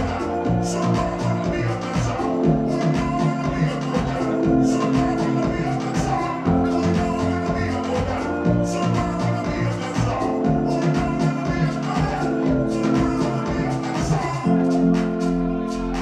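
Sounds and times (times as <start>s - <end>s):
electronic pop over loudspeakers: 0.0s - 16.0s.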